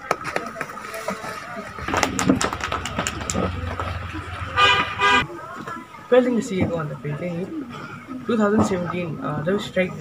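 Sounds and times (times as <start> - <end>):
low steady hum: 1.4 - 5.3
vehicle horn honking: 2.7 - 5.3.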